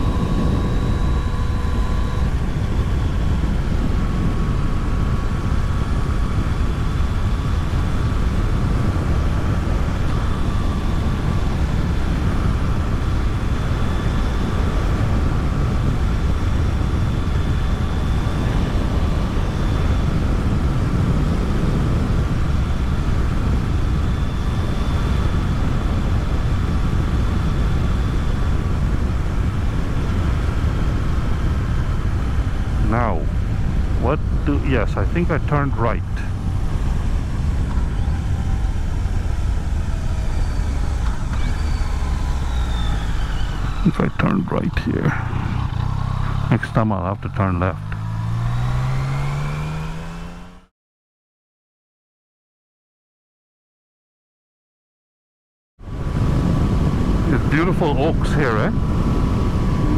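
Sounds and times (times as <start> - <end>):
faint steady whine: 0.0 - 49.7
wind rush: 0.0 - 50.5, 55.8 - 59.9
motorcycle engine rumble: 31.2 - 50.6.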